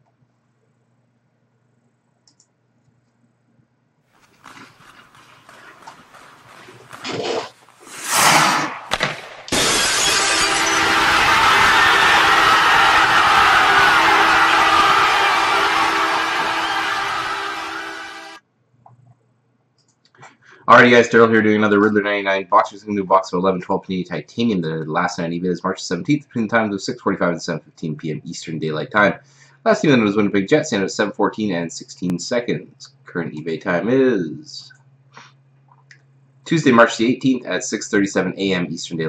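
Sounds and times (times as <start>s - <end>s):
short whooshes: 7.1s - 9.0s
loud ringing crash: 8.1s - 18.2s
faint low hum: 18.6s - 39.0s.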